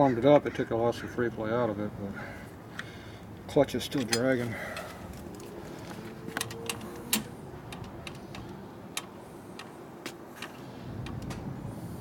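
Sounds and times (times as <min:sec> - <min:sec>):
low steady background hum: 0:00.0 - 0:12.0.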